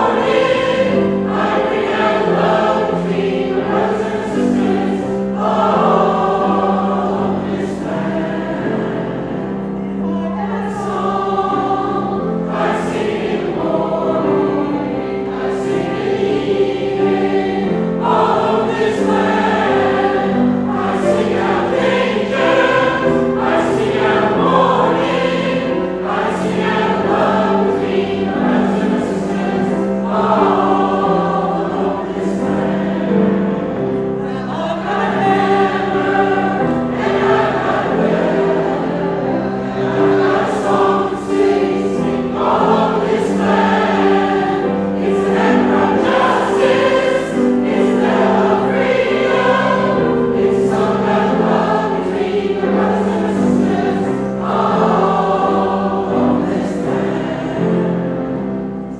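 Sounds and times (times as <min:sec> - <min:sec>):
mixed choir singing in harmony: 0:00.0 - 0:58.9.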